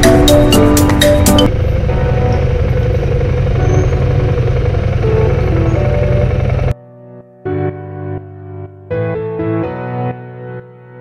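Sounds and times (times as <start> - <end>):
motorcycle engine rumbling: 0.0 - 6.7
background music: 0.0 - 11.0.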